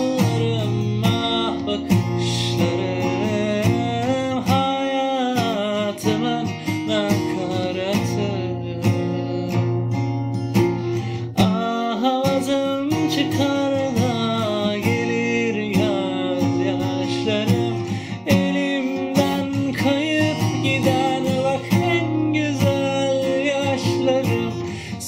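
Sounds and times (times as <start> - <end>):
man singing: 0.0 - 10.2, 11.0 - 25.0
acoustic guitar strummed: 0.0 - 25.0.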